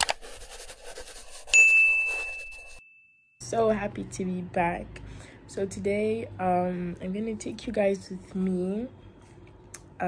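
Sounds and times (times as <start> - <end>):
scratchy pen writing: 0.0 - 2.8.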